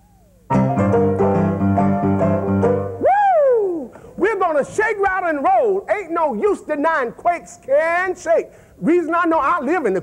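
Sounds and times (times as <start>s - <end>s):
piano playing repeated chords: 0.5s - 3.0s
man whooping: 3.0s - 4.0s.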